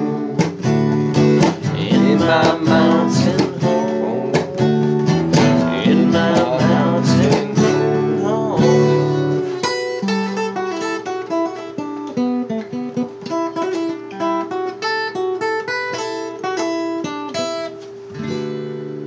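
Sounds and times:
acoustic guitar playing: 0.0s - 19.0s.

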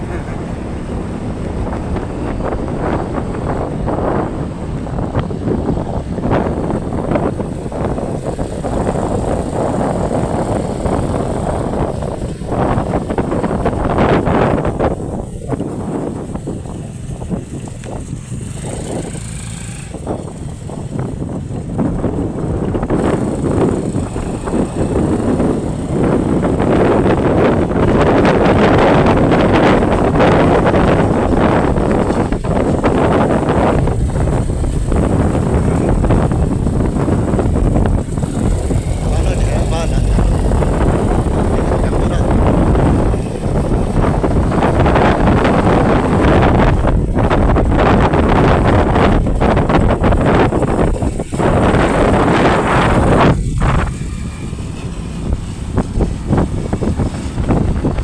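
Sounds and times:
motorcycle engine running: 0.0s - 58.0s
wind rushing over microphone: 0.0s - 58.0s.

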